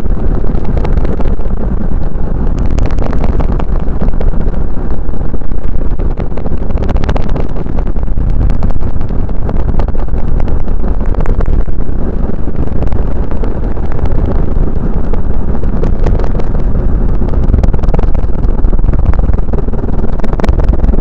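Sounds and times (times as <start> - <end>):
car road and wind noise: 0.0 - 21.0
small crackles: 0.0 - 21.0.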